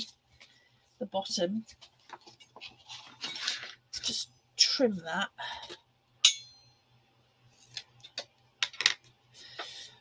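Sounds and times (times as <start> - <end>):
paper rustling and sliding: 1.8 - 3.7.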